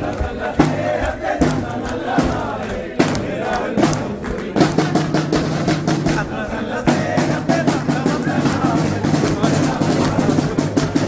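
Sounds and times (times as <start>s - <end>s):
crowd singing and chanting: 0.0s - 11.0s
drum beats: 0.0s - 11.0s.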